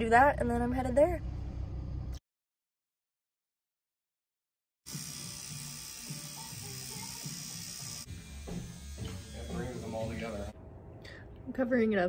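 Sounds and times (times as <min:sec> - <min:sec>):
low hum: 0:00.0 - 0:02.2, 0:09.7 - 0:12.0
tattoo machine buzzing: 0:04.9 - 0:10.5
man talking: 0:09.3 - 0:10.6.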